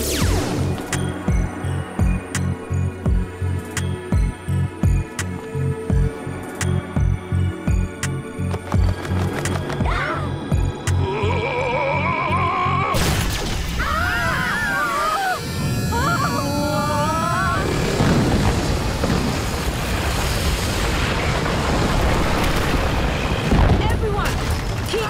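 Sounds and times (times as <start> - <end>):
dramatic music: 0.0 - 24.1
cartoon explosion blast: 12.9 - 23.9
dense rumble: 15.7 - 25.0.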